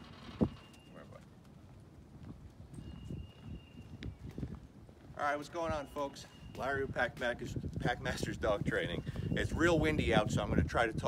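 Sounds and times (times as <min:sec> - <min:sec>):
wind rumble on microphone: 0:00.0 - 0:00.8, 0:01.4 - 0:11.0
faint footsteps: 0:00.0 - 0:09.3.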